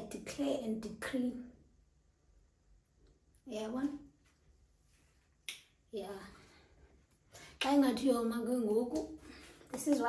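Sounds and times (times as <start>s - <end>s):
woman speaking: 3.4s - 4.1s, 7.6s - 10.0s.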